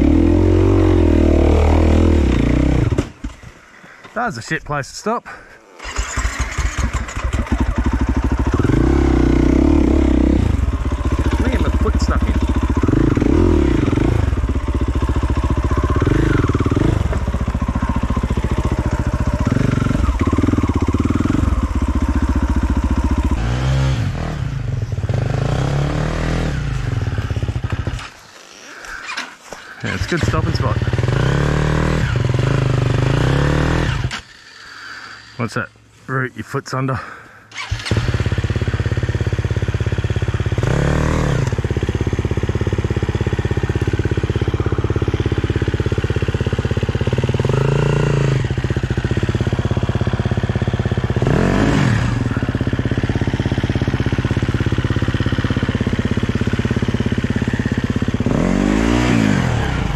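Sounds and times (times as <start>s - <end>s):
dirt bike engine revving: 0.0s - 3.5s, 5.8s - 35.4s, 37.0s - 59.9s.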